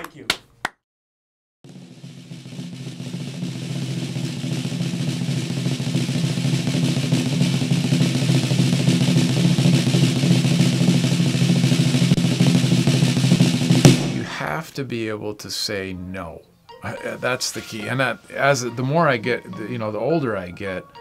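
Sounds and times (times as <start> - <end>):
drum roll: 1.6 - 14.7.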